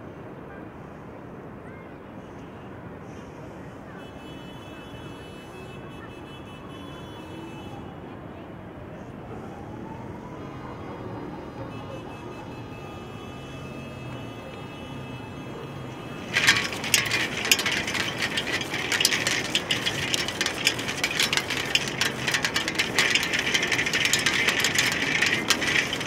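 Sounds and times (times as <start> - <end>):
film reel rattling: 15.8 - 26.0.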